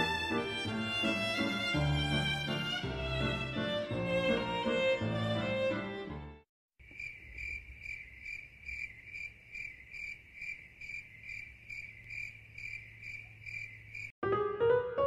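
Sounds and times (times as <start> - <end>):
cricket chirping: 6.8 - 14.1.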